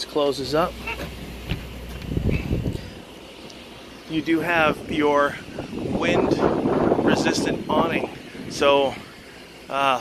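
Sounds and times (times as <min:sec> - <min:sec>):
wind buffeting microphone: 0:01.1 - 0:03.0, 0:04.5 - 0:09.2.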